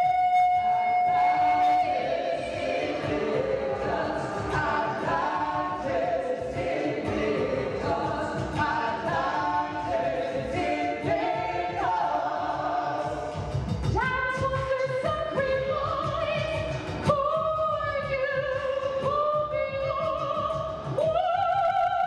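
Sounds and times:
opera ensemble singing: 0:00.3 - 0:22.0.

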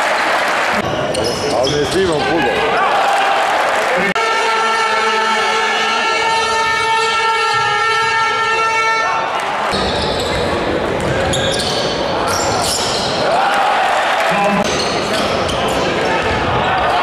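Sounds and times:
crowd noise: 0:00.0 - 0:17.0
shoe squeaks on court: 0:01.1 - 0:02.0, 0:09.7 - 0:13.2
basketball bouncing: 0:09.7 - 0:11.4.

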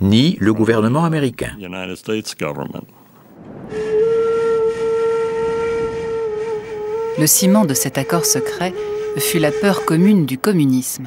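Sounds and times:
faint rushing noise: 0:03.0 - 0:07.1
long steady tone: 0:03.6 - 0:10.9.

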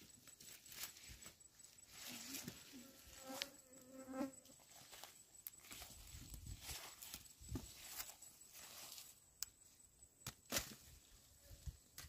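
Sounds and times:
dry soil and leaves rustling: 0:00.0 - 0:12.0
fly buzzing: 0:02.1 - 0:04.6.

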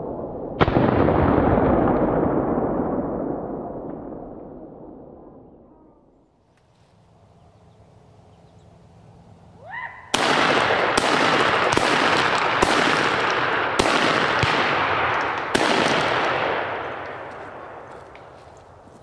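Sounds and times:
gunshots with echo: 0:10.1 - 0:18.9.

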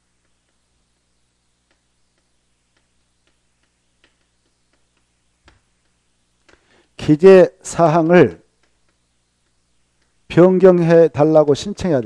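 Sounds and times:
low steady hum: 0:00.0 - 0:12.0
chalk tapping on blackboard: 0:01.6 - 0:06.6, 0:08.0 - 0:11.0.

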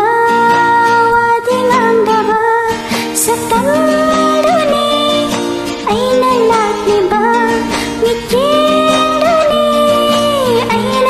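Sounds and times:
karaoke backing track: 0:00.0 - 0:11.0
person singing: 0:00.0 - 0:11.0.

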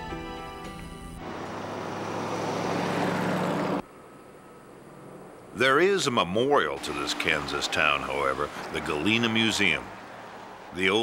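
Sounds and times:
pickup truck driving: 0:00.6 - 0:11.0.

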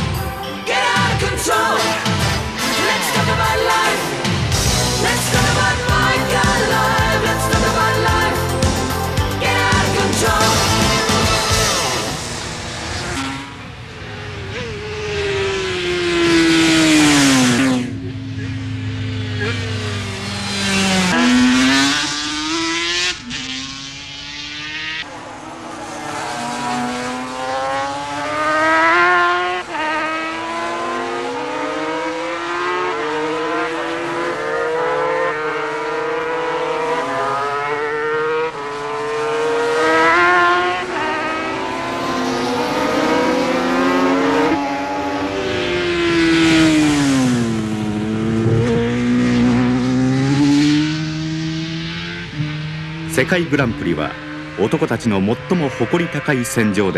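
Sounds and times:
racing motorcycle engines revving: 0:00.0 - 0:56.9.

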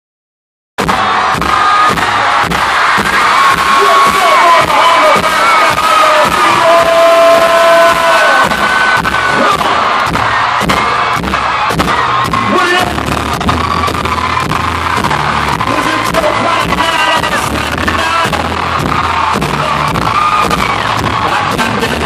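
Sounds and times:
arena crowd cheering and screaming: 0:00.8 - 0:22.0
live concert music: 0:00.8 - 0:22.0
steady drum beat: 0:00.8 - 0:22.0.

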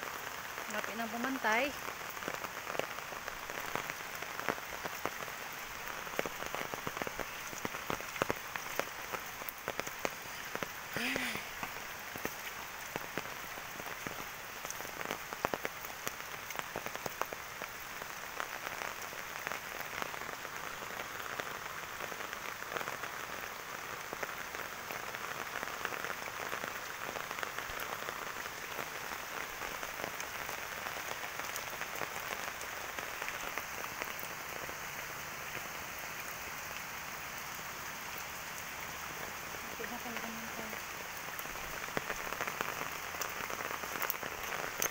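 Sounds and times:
rain on leaves and wet ground: 0:00.0 - 0:44.9.

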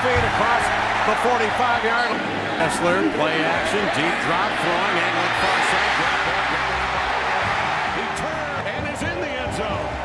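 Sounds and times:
stadium crowd roaring: 0:00.0 - 0:10.0.

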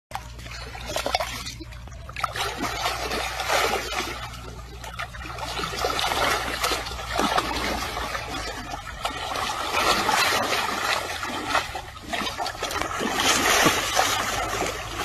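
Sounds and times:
muddy water splashing: 0:00.1 - 0:15.0.

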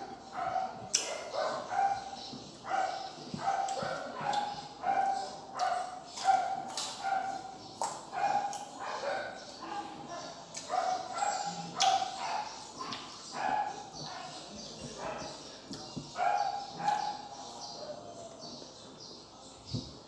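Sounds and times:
crunchy fruit being chewed: 0:02.5 - 0:08.8, 0:09.4 - 0:17.6.

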